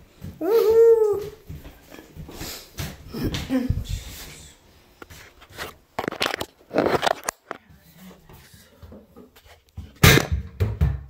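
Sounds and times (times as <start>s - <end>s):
soft knocks and scuffs: 0.0s - 5.9s.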